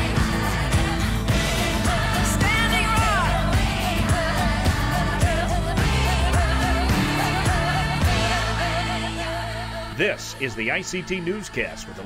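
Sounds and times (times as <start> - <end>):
pop music with sung melody: 0.0 - 12.0.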